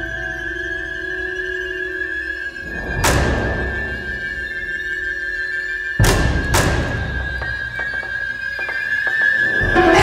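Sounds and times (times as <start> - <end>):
held high note music: 9.6 - 10.0.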